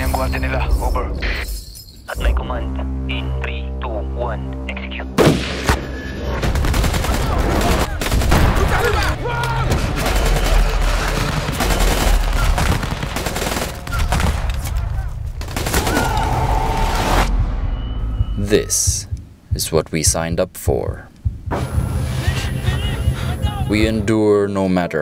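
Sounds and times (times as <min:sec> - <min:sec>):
automatic rifle gunfire: 0:09.8 - 0:14.4.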